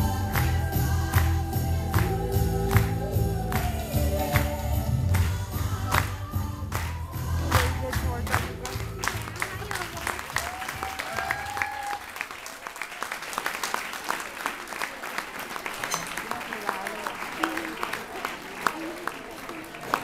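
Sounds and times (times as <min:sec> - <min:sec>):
dance music: 0:00.0 - 0:10.8
audience applauding: 0:05.1 - 0:20.0.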